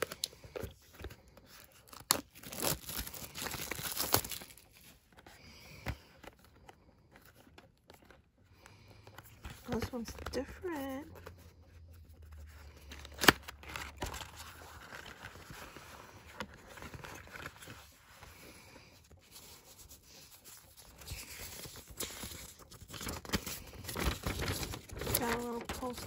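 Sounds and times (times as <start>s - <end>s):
paper rustling and crinkling: 0.0s - 26.0s.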